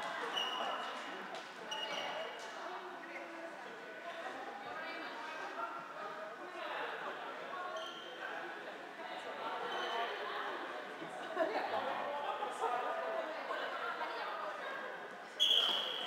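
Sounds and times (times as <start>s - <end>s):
shoes squeaking on court floor: 0.2s - 1.0s, 1.7s - 2.4s, 15.4s - 16.0s.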